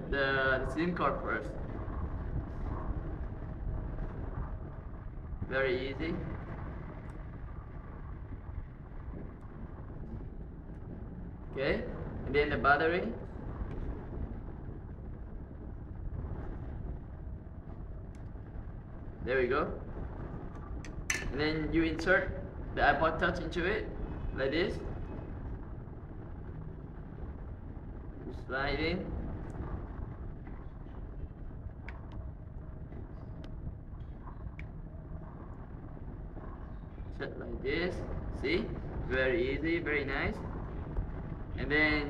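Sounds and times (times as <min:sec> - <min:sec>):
low background rumble: 0:00.0 - 0:42.0.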